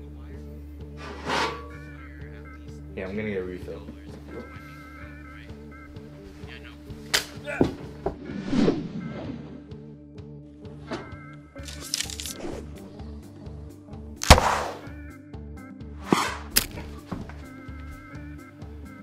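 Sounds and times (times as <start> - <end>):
background music: 0.0 - 19.0
swish: 8.2 - 9.6, 16.0 - 16.5
arrow hitting sharply: 14.2 - 14.9, 16.0 - 16.8.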